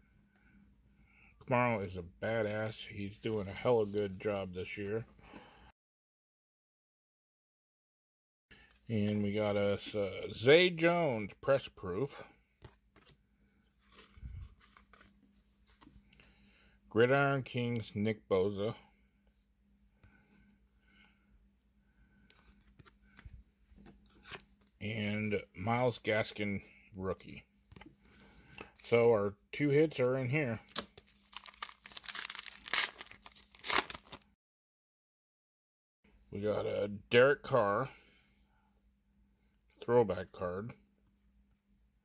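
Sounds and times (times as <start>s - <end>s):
faint steady hum: 0.0s - 5.7s, 8.6s - 34.2s, 36.1s - 42.0s
trading cards handling: 12.6s - 16.0s, 22.3s - 24.7s, 30.6s - 34.2s
card pack wrapper crinkling: 30.6s - 34.2s.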